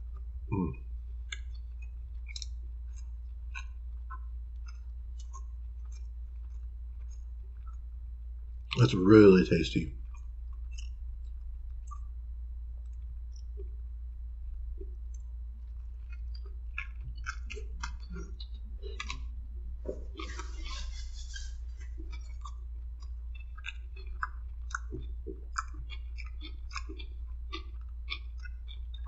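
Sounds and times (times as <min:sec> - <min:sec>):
person chewing: 0:01.3 - 0:07.8, 0:14.8 - 0:29.0
wet mouth clicks and smacks: 0:01.3 - 0:07.8, 0:10.1 - 0:12.1, 0:14.8 - 0:19.3, 0:20.0 - 0:29.0.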